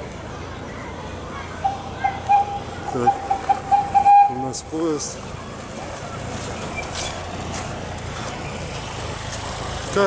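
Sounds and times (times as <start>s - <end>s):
road train horn beeps: 1.6s - 4.4s.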